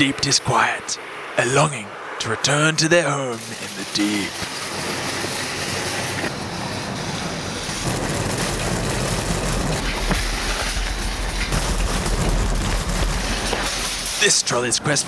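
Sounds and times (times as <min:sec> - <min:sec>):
deeper rumble: 0:03.3 - 0:14.3
shopping trolley rattling on asphalt: 0:03.4 - 0:14.7.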